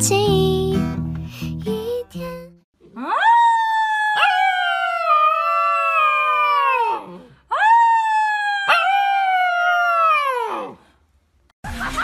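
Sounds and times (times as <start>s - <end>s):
puppy howling: 3.0s - 10.8s.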